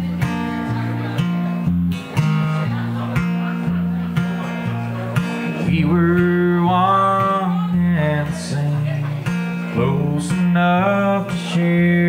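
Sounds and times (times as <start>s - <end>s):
strummed acoustic guitar: 0.0s - 12.0s
man singing: 3.9s - 12.0s.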